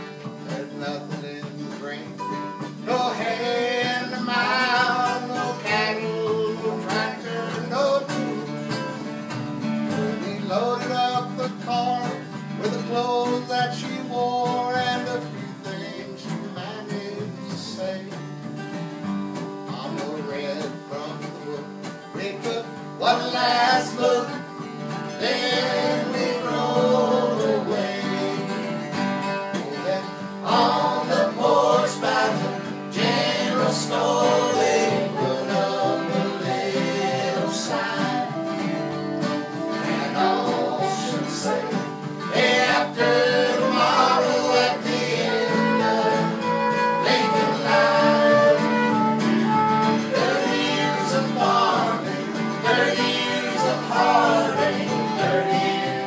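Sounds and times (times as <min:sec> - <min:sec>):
strummed acoustic guitars: 0:00.0 - 0:56.0
fiddle melody: 0:30.3 - 0:56.0
soprano saxophone: 0:34.6 - 0:42.1, 0:45.4 - 0:51.6.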